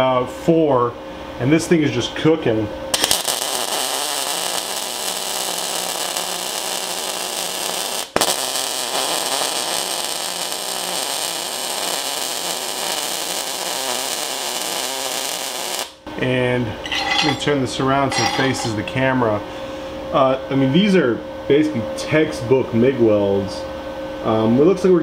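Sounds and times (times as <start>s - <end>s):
welding arc crackling: 3.0s - 16.0s.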